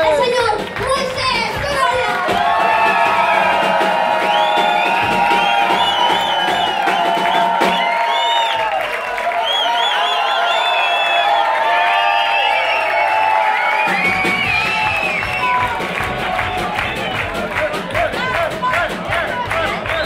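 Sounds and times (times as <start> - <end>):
live band playing: 0.0 - 8.2, 13.4 - 20.0
crowd cheering and whooping: 0.8 - 20.0.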